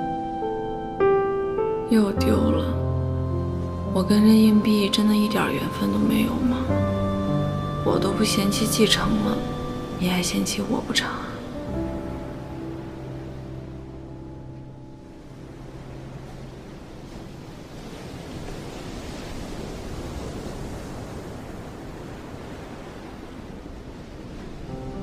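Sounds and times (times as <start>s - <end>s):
held music chord: 0.0s - 16.8s
sea surf on sandy beach: 2.4s - 25.0s.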